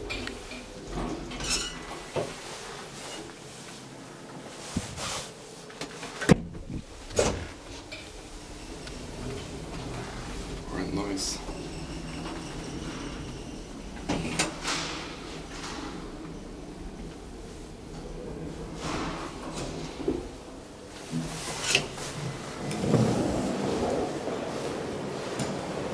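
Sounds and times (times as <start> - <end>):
elevator doors opening rush: 0.0 - 4.8, 5.5 - 25.9
elevator hum: 0.0 - 25.9.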